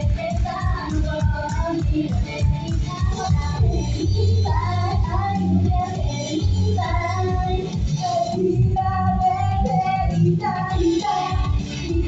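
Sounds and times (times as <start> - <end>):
pop backing with steady beat: 0.0 - 12.0
woman singing pop song: 0.0 - 12.0.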